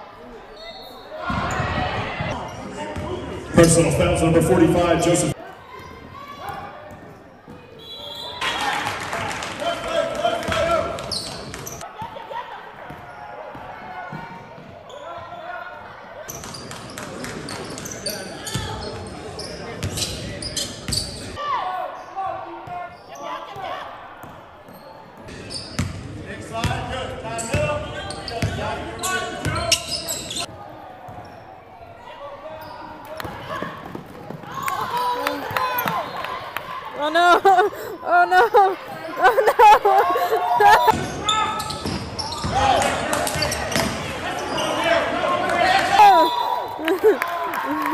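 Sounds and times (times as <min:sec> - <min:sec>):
indistinct voices in gym: 0:00.0 - 0:47.9.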